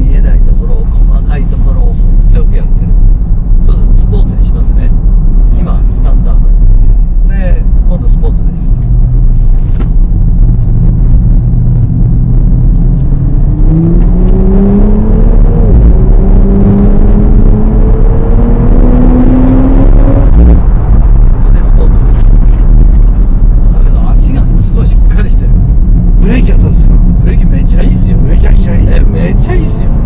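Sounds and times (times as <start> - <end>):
car engine accelerating: 0.0 - 30.0
steady low rumble: 0.0 - 30.0.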